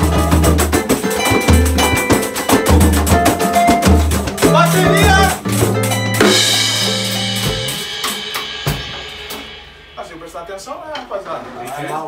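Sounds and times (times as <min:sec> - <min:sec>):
percussion band playing: 0:00.0 - 0:12.0
men talking: 0:04.4 - 0:05.5, 0:10.0 - 0:12.0
cymbal ringing: 0:04.4 - 0:11.0.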